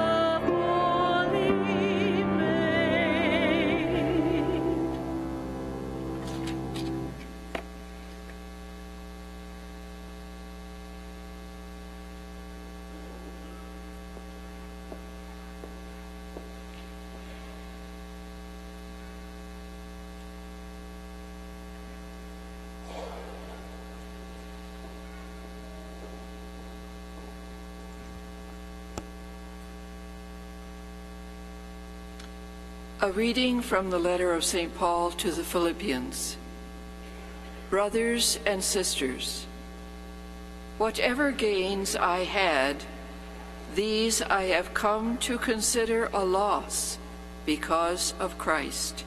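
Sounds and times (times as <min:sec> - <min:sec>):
music: 0:00.0 - 0:07.2
electrical mains hum: 0:00.0 - 0:49.0.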